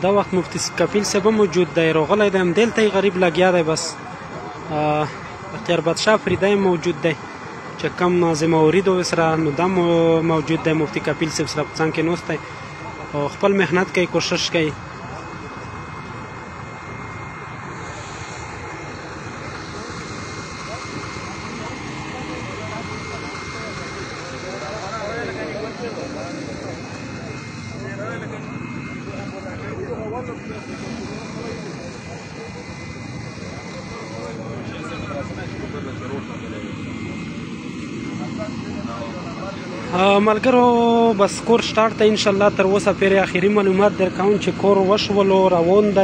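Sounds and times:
engine drone with faint whine: 0:00.0 - 0:46.0
people talking indistinctly: 0:00.0 - 0:46.0.

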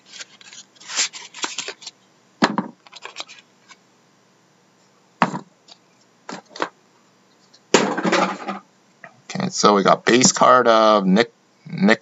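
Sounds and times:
cards scraping rustle: 0:00.0 - 0:02.0, 0:02.8 - 0:03.8.

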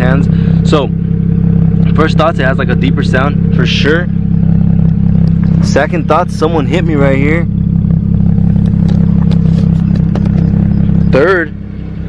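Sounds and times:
car engine idling: 0:00.0 - 0:12.0.

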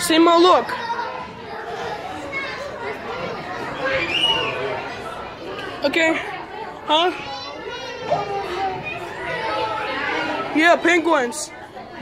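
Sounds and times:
children's voices: 0:00.0 - 0:12.0
crowd chatter: 0:00.0 - 0:12.0.

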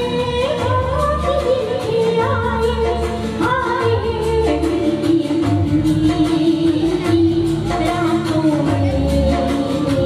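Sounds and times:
backing music with steady beat: 0:00.0 - 0:10.0
woman singing into microphone: 0:00.0 - 0:10.0.

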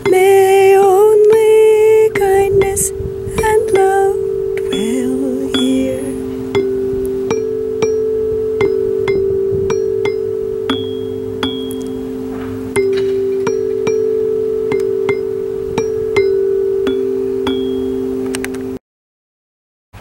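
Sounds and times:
bell-like struck notes: 0:00.0 - 0:18.8
low two-note drone: 0:00.0 - 0:18.8.

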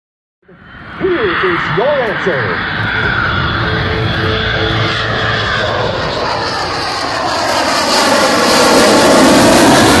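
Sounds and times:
jet flying past: 0:00.5 - 0:10.0.

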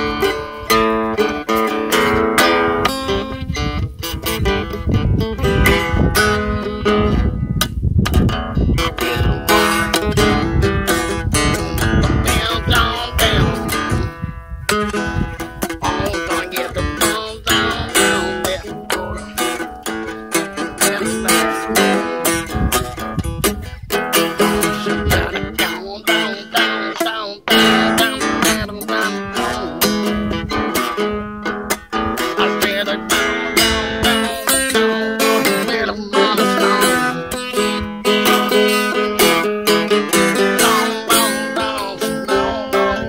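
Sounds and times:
acoustic guitar strummed bluesy: 0:00.0 - 0:43.0.

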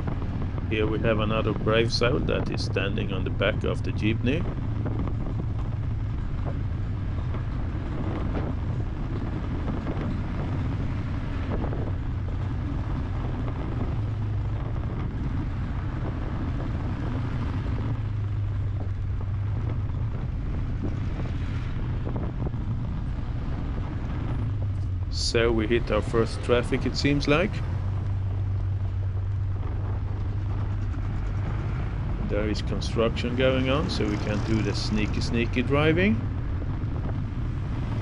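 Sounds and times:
car engine hum: 0:00.0 - 0:38.0
road and tyre noise: 0:00.0 - 0:38.0.

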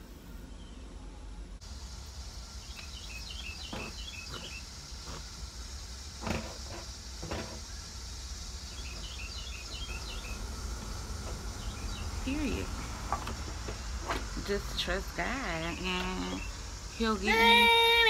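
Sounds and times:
birds chirping: 0:00.0 - 0:18.0
steady hiss: 0:01.3 - 0:18.0
woman humming: 0:15.5 - 0:18.0.

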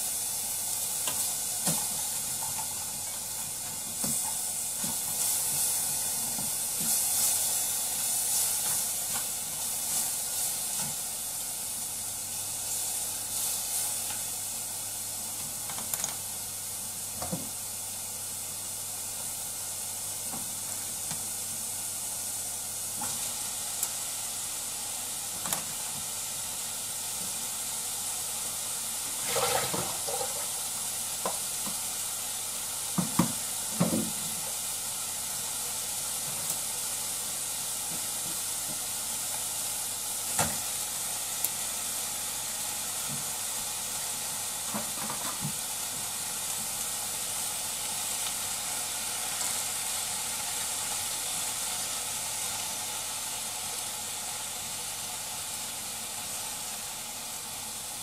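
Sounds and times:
vegetables sizzling in a pot: 0:00.0 - 0:58.0.

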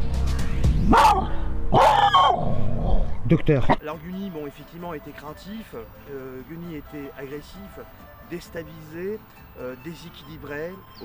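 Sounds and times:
background music: 0:00.0 - 0:02.7, 0:03.8 - 0:11.0
dog yelping: 0:00.9 - 0:02.5.

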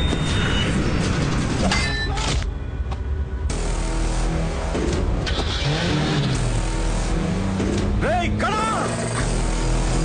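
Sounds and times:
background music: 0:00.2 - 0:10.0.

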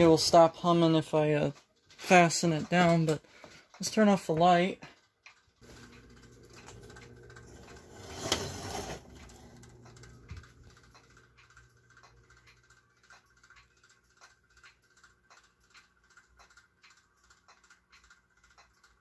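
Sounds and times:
small electric motor humming: 0:05.6 - 0:12.4
light ticks: 0:09.6 - 0:19.0.

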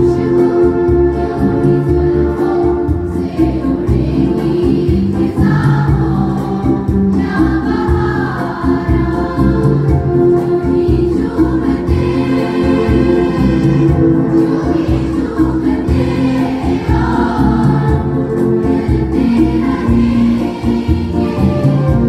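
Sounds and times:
girls' choir singing: 0:00.0 - 0:22.0.

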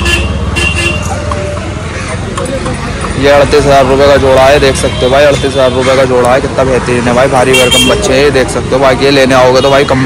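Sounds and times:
vehicle engine rumbling: 0:00.0 - 0:10.0
car horn toots: 0:07.5 - 0:08.0.

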